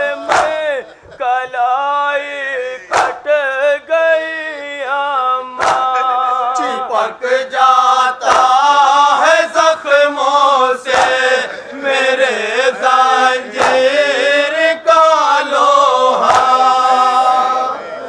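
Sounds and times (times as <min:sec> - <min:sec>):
men chanting a lament: 0:00.0 - 0:18.0
hands slapping chests: 0:00.2 - 0:00.8, 0:02.9 - 0:03.3, 0:05.6 - 0:06.1, 0:08.2 - 0:08.8, 0:10.8 - 0:11.4, 0:13.5 - 0:14.0, 0:16.2 - 0:16.8.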